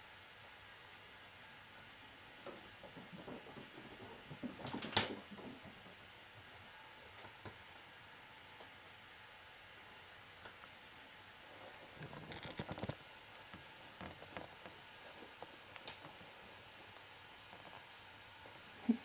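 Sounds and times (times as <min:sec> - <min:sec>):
faint room tone hiss: 0:00.0 - 0:19.0
rustling and knocking: 0:02.4 - 0:06.1.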